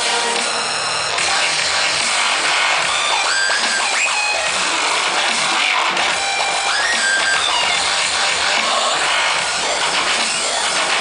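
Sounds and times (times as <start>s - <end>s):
loud electronic dance music: 0.0s - 11.0s.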